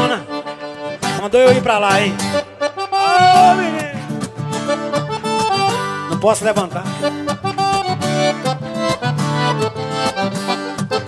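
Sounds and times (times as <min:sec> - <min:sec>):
accordion playing: 0:00.0 - 0:11.0
strummed acoustic guitars: 0:00.0 - 0:11.0.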